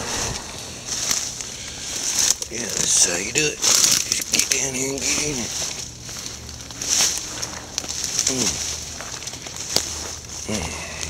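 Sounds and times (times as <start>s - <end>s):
dry brush rustling and crackling: 0.0s - 11.0s
twigs snapping: 0.0s - 11.0s.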